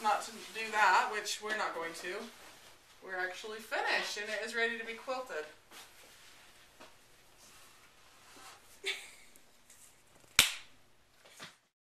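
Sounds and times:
hand slap of a high five: 10.4s - 10.7s.

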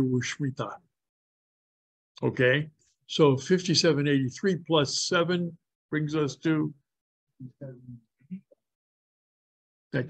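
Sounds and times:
man speaking: 0.0s - 0.8s, 7.4s - 8.1s.

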